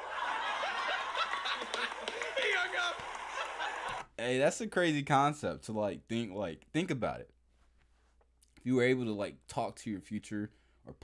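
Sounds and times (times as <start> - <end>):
people laughing: 0.0 - 4.1.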